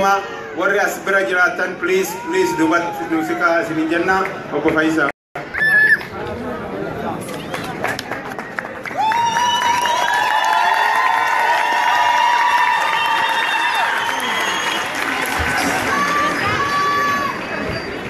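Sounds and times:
crowd cheering: 7.8s - 18.0s.

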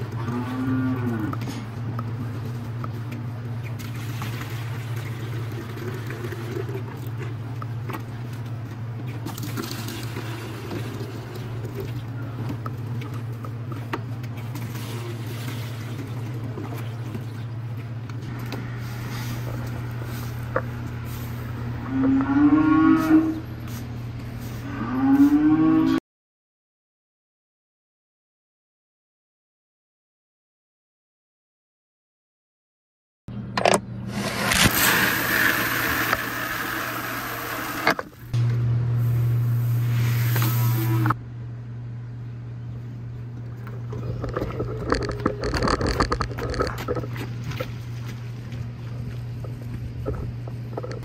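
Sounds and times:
cow mooing: 0.0s - 1.6s, 21.8s - 23.5s, 24.6s - 26.0s
low hum: 0.0s - 26.0s, 33.3s - 51.0s.

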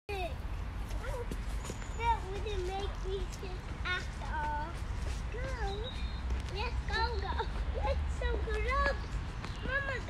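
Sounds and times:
footsteps on dirt path: 0.9s - 7.7s.

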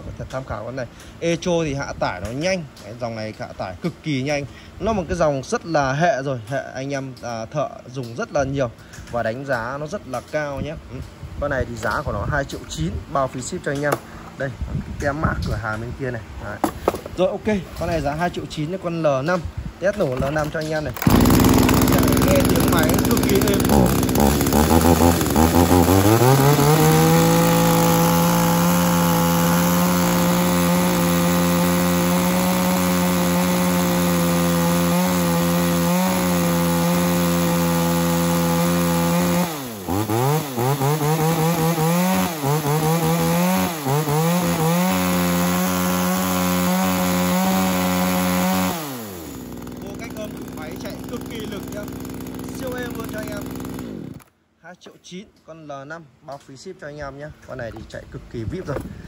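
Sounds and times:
chainsaw revving: 20.0s - 54.3s.

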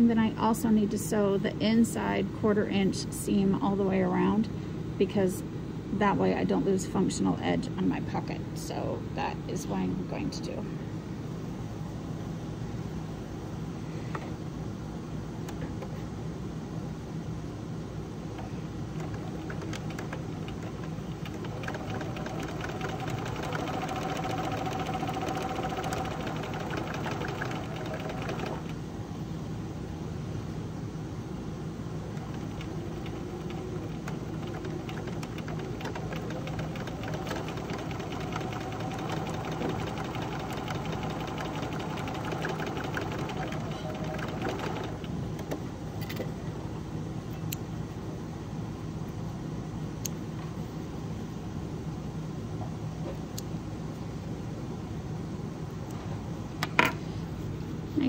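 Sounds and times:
sewing machine stitching: 19.0s - 28.8s, 32.1s - 45.5s.

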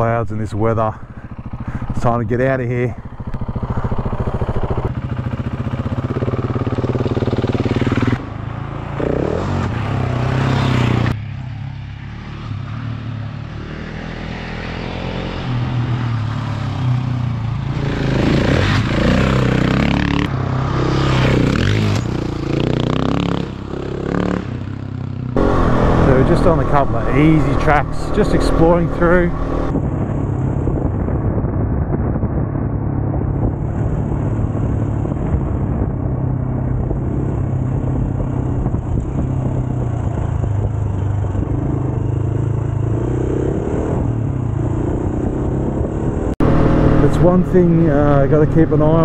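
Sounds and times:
motorcycle engine revving: 0.0s - 31.2s, 33.1s - 49.0s.

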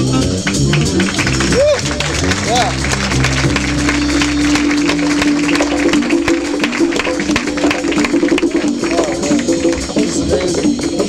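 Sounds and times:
jazz quintet playing up-tempo: 0.0s - 10.8s
saxophone lead line: 0.0s - 11.0s.

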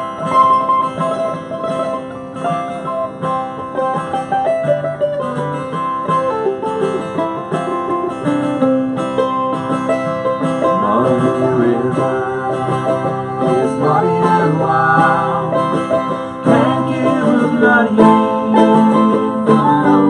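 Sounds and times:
mandolin picking melody: 0.0s - 20.0s
strummed acoustic guitar: 0.0s - 20.0s.

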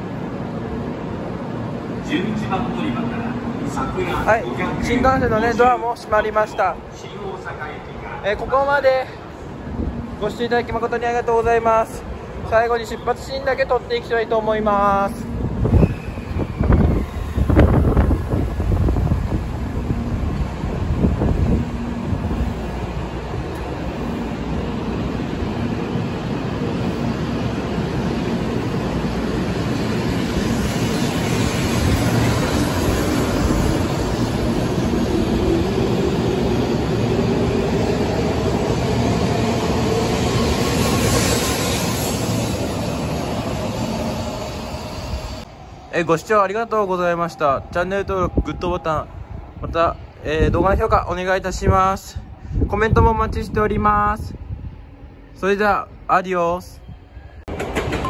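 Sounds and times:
train running noise: 0.0s - 46.3s, 56.8s - 58.0s
train whine rising in pitch: 15.5s - 25.0s.

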